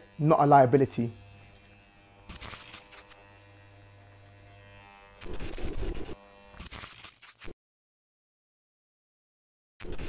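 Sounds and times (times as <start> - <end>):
electric hair clippers buzzing: 0.0 - 7.6.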